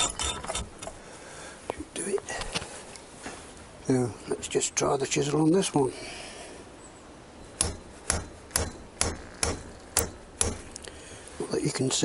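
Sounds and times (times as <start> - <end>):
hammer tapping steel chisel: 7.6 - 10.8.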